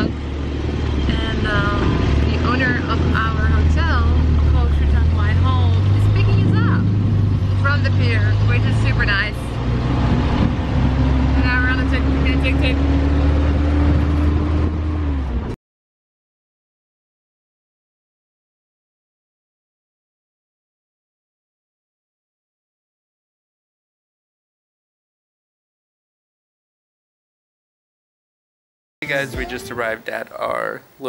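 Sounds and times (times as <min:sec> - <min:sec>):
motorcycle tuk-tuk engine running: 0:00.0 - 0:15.4
voices: 0:01.0 - 0:06.9, 0:07.6 - 0:09.6, 0:11.3 - 0:12.9, 0:29.0 - 0:31.0.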